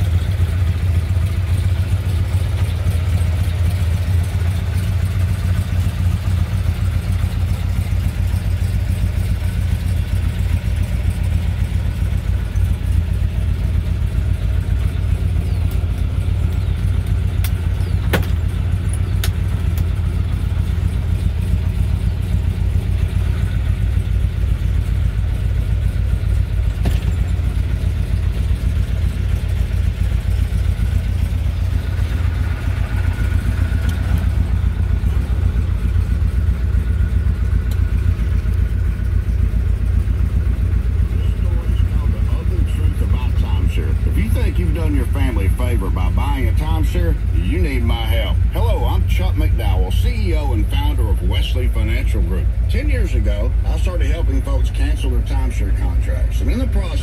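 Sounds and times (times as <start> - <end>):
car engine idling: 0.0 - 57.0.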